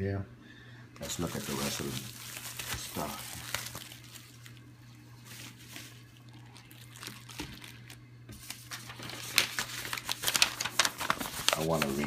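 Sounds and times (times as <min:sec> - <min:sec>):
plastic wrapping crinkling: 0:01.0 - 0:12.0.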